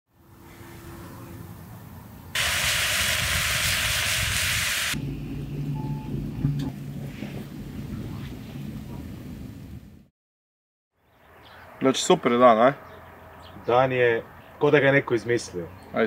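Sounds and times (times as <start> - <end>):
loud even hiss: 2.4 - 5.0
fire crackle: 2.4 - 5.4
wood fire rumbling: 2.4 - 10.1.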